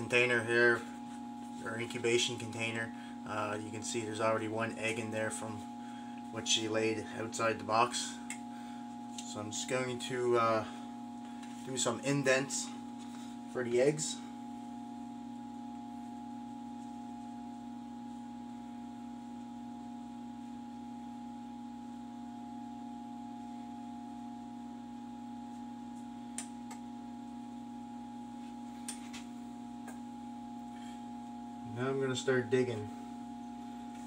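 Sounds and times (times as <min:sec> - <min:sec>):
mechanical hum of equipment: 0:00.0 - 0:34.0.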